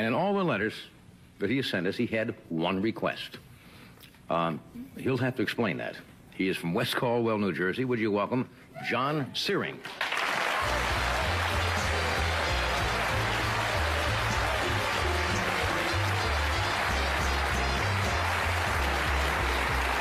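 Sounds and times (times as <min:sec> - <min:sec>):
audience applauding: 0:09.8 - 0:20.0
band playing: 0:10.6 - 0:20.0
bass line: 0:10.6 - 0:20.0.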